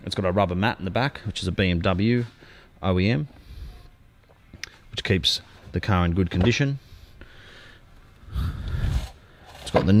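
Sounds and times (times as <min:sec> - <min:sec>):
person breathing in sharply: 0:06.9 - 0:09.5.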